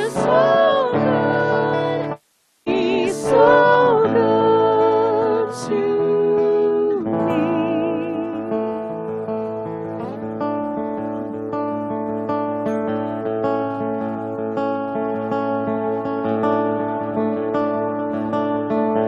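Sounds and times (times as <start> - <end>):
acoustic guitar chords: 0.0 - 19.0.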